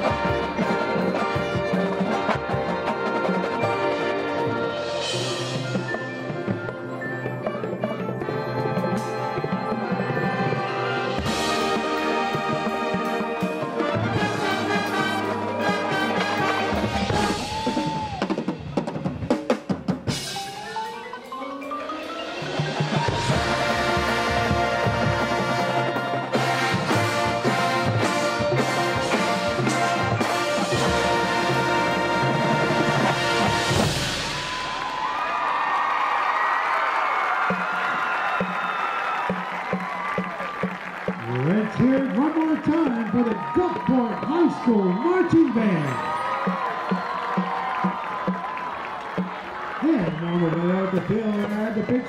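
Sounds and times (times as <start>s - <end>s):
marching band playing: 0.0s - 52.0s
crowd cheering: 9.8s - 19.4s, 22.1s - 52.0s.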